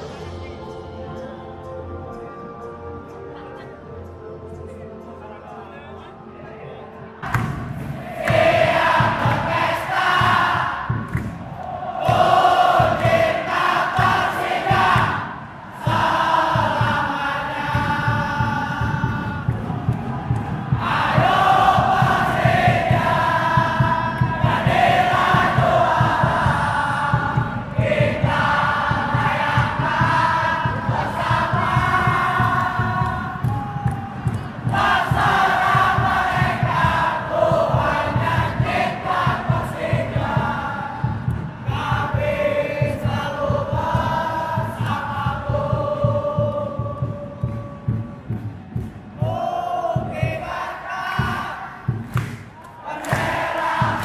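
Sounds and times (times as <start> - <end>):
stadium crowd singing chants: 7.1 - 54.0.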